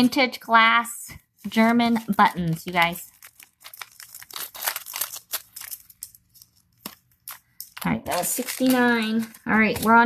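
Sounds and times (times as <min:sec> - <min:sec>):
plastic bag crinkling: 0:01.4 - 0:10.0.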